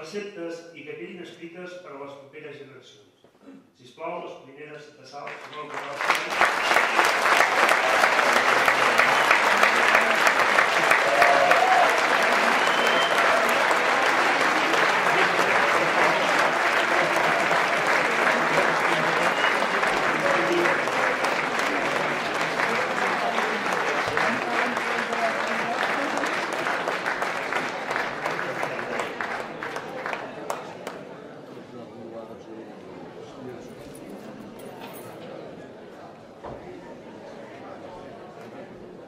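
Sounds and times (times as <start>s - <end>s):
large audience applauding: 5.3s - 31.1s.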